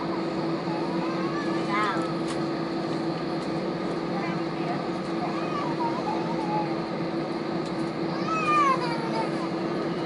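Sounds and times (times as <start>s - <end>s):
jet engines idling in cabin: 0.0s - 10.0s.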